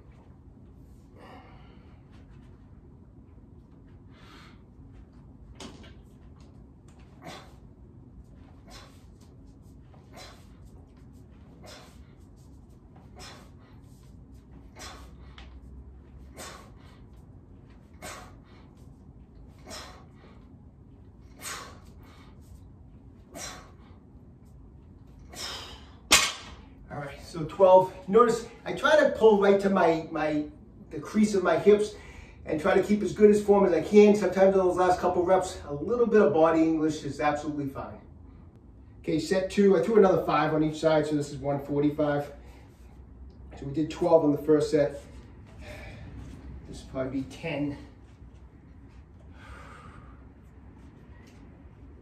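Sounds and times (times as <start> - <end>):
man's sharp exhalations: 1.2 - 2.0, 45.5 - 46.3, 49.3 - 50.4.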